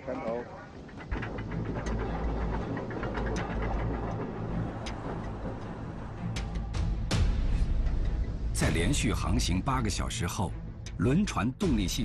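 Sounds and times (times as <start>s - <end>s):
anchor chain rumbling: 0.0s - 7.1s.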